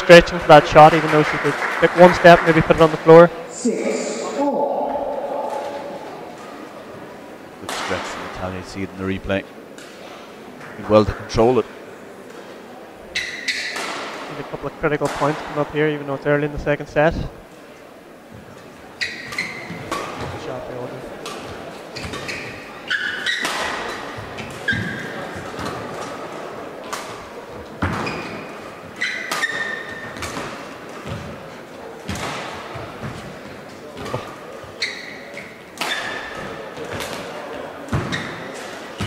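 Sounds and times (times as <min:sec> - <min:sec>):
shoes squeaking on court: 0:19.0 - 0:20.3, 0:21.9 - 0:25.2, 0:27.8 - 0:31.3, 0:34.0 - 0:37.0, 0:37.9 - 0:39.0.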